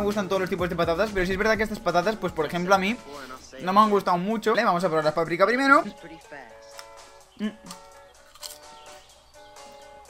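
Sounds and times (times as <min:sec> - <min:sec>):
quiet background music: 0:00.0 - 0:10.0
man murmuring mm: 0:07.4 - 0:07.8
crisp being chewed: 0:07.6 - 0:09.0.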